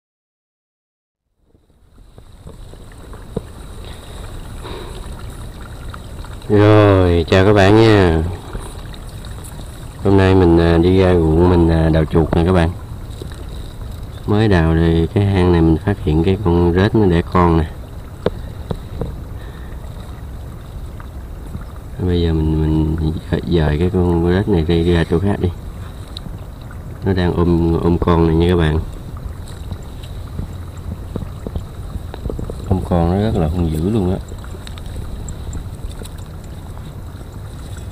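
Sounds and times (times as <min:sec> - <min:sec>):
wind rumbling on microphone: 0:01.4 - 0:37.9.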